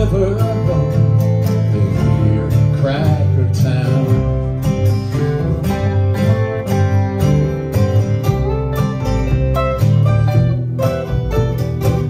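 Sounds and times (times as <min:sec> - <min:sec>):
electric guitar line: 0:00.0 - 0:12.0
strummed acoustic guitars: 0:00.0 - 0:12.0
upright bass: 0:00.0 - 0:12.0.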